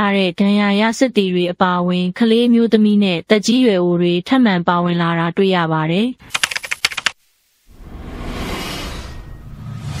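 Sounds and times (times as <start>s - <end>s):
noise hiss: 6.2s - 8.0s
sharp clicks: 6.3s - 7.2s.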